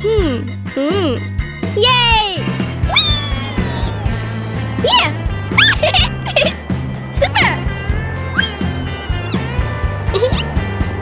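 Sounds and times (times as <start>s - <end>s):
cartoon background music: 0.0s - 11.0s
cartoon kitten yelps: 2.9s - 4.1s, 4.8s - 5.9s, 8.3s - 9.4s.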